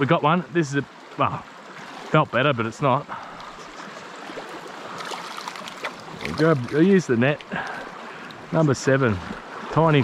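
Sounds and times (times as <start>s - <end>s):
creek water running over stones: 0.0s - 10.0s.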